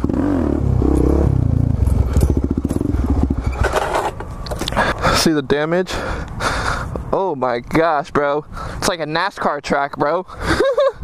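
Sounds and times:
motorcycle engine at low revs: 0.0 - 4.4
motorcycle clatter stopping: 0.9 - 4.1.

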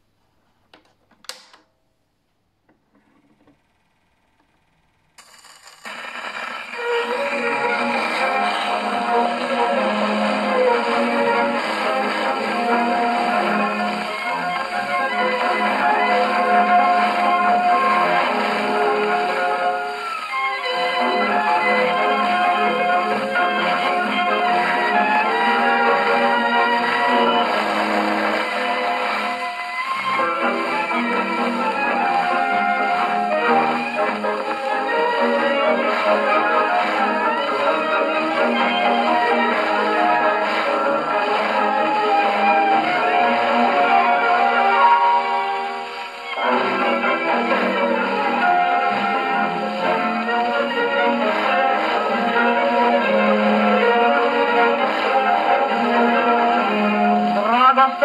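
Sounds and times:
record surface hiss and crackle: 0.0 - 58.0
gramophone handling clicks: 0.7 - 1.7
old recorded music: 5.8 - 58.0.

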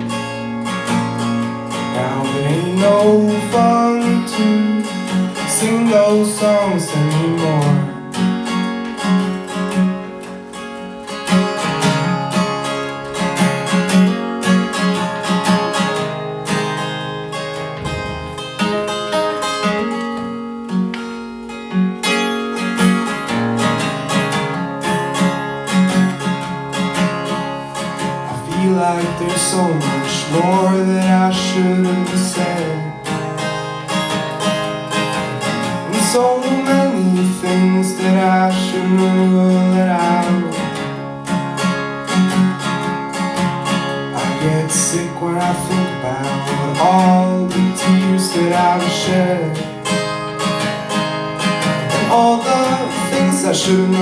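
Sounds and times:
acoustic guitar strummed and picked: 0.0 - 54.0
person singing: 1.9 - 8.0, 28.3 - 33.1, 35.8 - 40.8, 44.1 - 49.8, 51.9 - 54.0.

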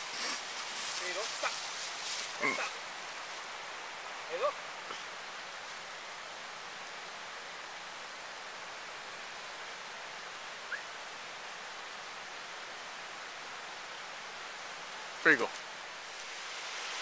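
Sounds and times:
forest creek rushing: 0.0 - 17.0.

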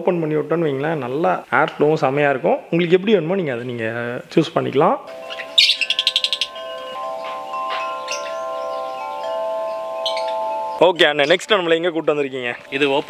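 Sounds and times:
metal tube wind chime ringing: 5.1 - 12.0
bird trill: 5.1 - 13.0.

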